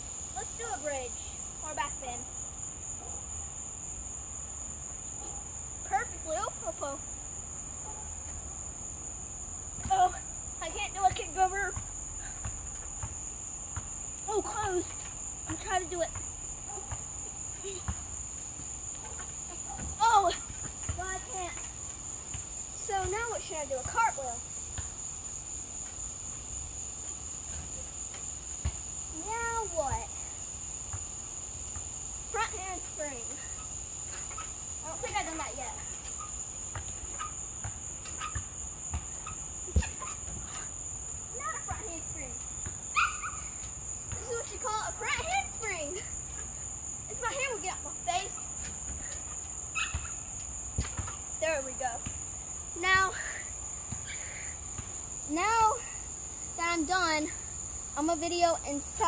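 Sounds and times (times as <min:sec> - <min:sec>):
crickets chirping: 0:00.0 - 0:59.0
voices: 0:00.4 - 0:02.4, 0:05.8 - 0:07.1, 0:09.8 - 0:12.5, 0:14.2 - 0:22.0, 0:22.8 - 0:24.5, 0:29.1 - 0:30.3, 0:32.3 - 0:36.2, 0:39.0 - 0:49.2, 0:51.4 - 0:54.4, 0:55.3 - 0:57.4, 0:58.0 - 0:59.0.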